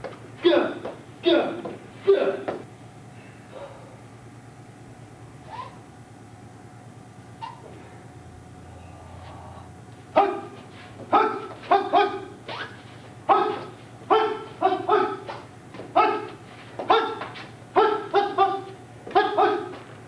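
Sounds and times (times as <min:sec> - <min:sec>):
dog barking: 0:10.2 - 0:12.4, 0:13.3 - 0:15.4, 0:16.0 - 0:19.8.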